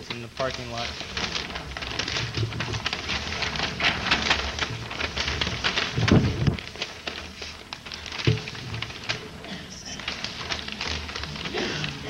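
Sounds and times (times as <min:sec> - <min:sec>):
paper sheets rustling: 0:00.0 - 0:12.0.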